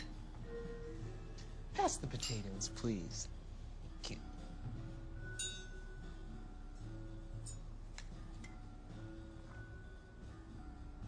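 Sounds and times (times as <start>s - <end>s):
tableware clinking: 0.0s - 0.2s, 2.0s - 2.7s, 5.3s - 6.0s, 7.4s - 7.7s
quiet background music: 0.0s - 11.0s.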